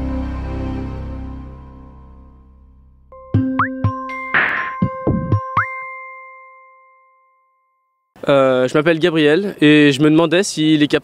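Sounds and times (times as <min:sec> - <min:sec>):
bell-like jingle chime: 0:04.1 - 0:08.0.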